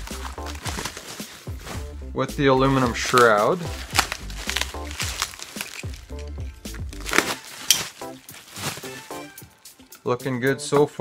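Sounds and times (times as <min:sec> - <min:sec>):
bubble wrap crinkling: 0:00.0 - 0:09.9
background music with bass: 0:00.0 - 0:11.0.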